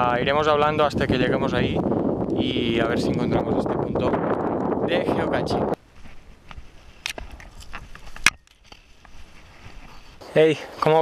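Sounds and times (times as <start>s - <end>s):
twigs crackling underfoot: 5.8s - 10.2s
footsteps through dry scrub: 5.8s - 10.8s.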